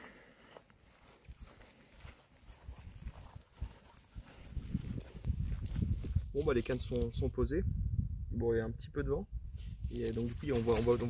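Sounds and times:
wind buffeting microphone: 2.6 - 11.0.

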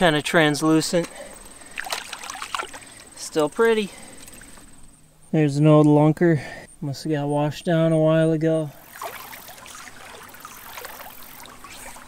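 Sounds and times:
water splashing and sloshing: 0.0 - 4.9, 8.7 - 12.0
cricket trill: 0.0 - 12.0.

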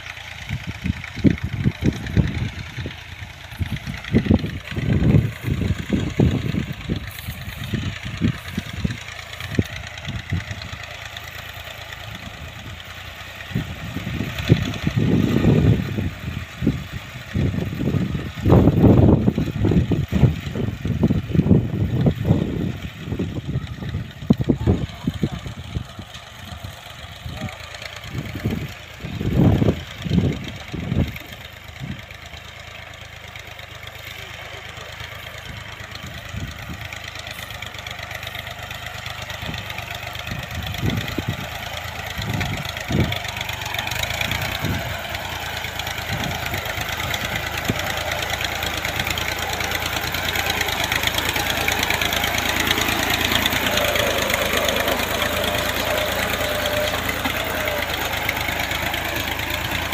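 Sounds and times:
tractor engine running: 0.0 - 59.9
wind buffeting microphone: 0.5 - 10.8, 39.4 - 49.6.

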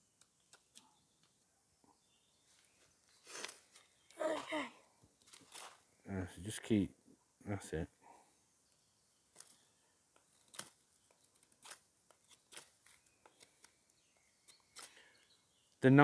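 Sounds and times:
knife scraping wood: 11.3 - 13.5.

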